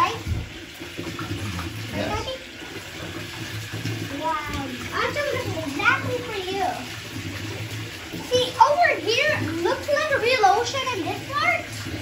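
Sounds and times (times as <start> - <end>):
tap pouring water into tub: 0.0 - 12.0.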